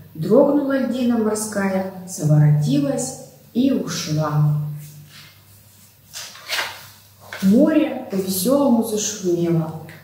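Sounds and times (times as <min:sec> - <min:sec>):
book page rustling: 0:05.1 - 0:07.7.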